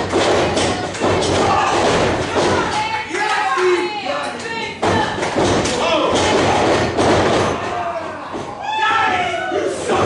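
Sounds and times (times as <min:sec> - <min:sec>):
audience shouting: 0:07.6 - 0:10.0.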